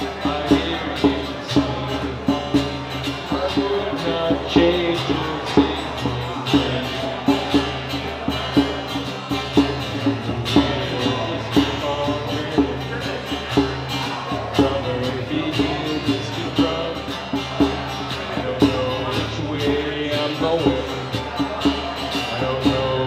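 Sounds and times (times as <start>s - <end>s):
acoustic guitar strumming: 0.0s - 23.0s
djembe played by hand: 0.2s - 14.8s.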